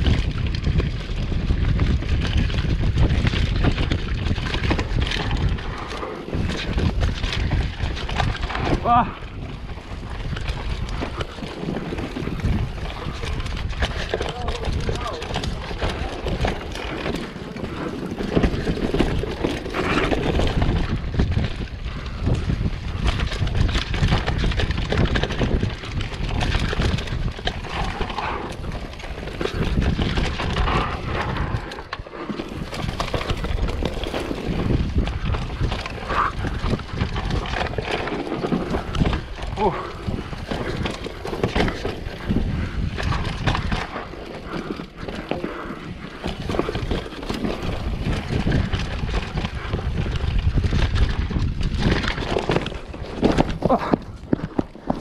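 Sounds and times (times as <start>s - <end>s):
bike rattling over bumps: 0.0s - 55.0s
tyre and wind rush: 0.0s - 55.0s.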